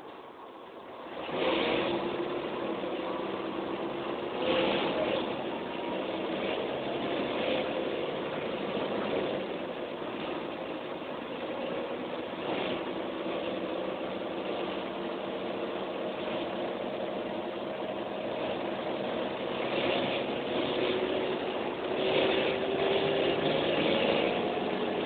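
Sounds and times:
bus engine running: 0.0s - 25.0s.

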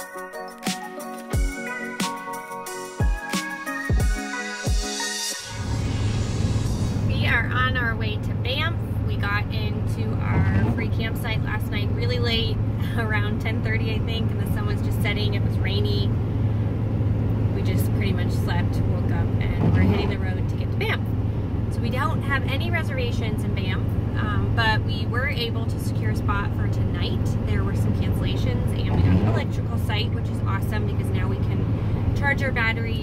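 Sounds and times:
truck engine and road noise: 5.4s - 33.0s
woman talking: 7.1s - 16.2s, 17.5s - 21.1s, 21.7s - 33.0s.

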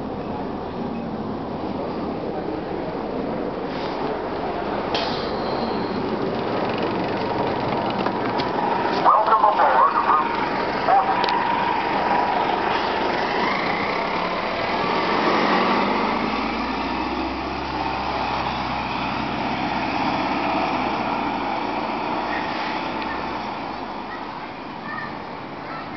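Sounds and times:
bus pulling away: 0.0s - 25.9s.

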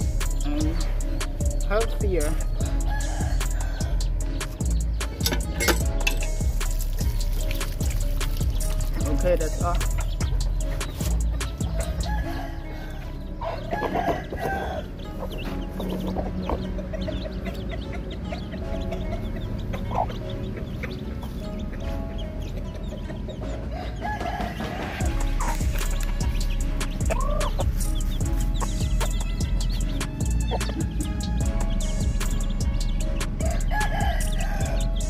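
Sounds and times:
chicks peeping: 0.0s - 35.0s
chickens clucking: 7.5s - 35.0s.

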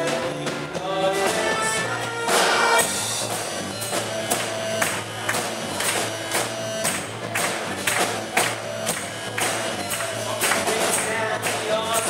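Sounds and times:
drum kit beat: 0.0s - 12.0s
rock band playing: 0.0s - 12.0s.

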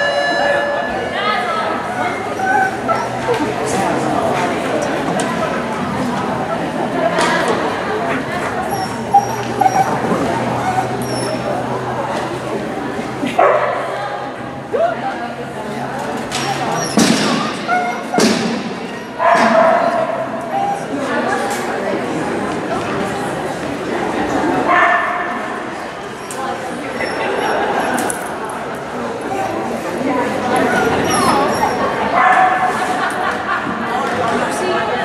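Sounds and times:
murmur of voices: 0.0s - 35.0s
dog yipping: 2.0s - 3.2s, 8.7s - 11.5s, 16.8s - 18.2s, 19.2s - 20.9s, 30.5s - 32.5s
dog barking: 19.2s - 20.2s, 32.2s - 32.7s.

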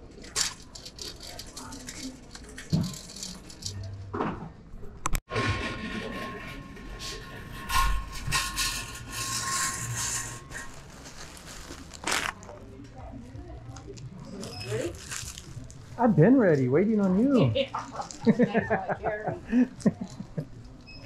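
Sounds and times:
wire shopping cart rattling: 0.0s - 4.0s, 5.3s - 12.5s.

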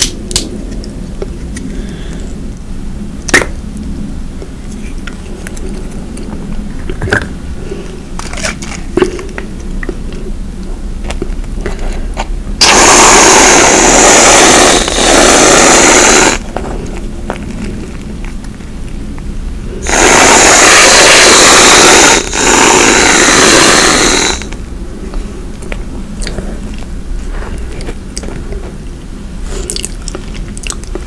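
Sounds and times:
whipped cream can hissing: 12.6s - 16.5s, 19.8s - 24.6s.

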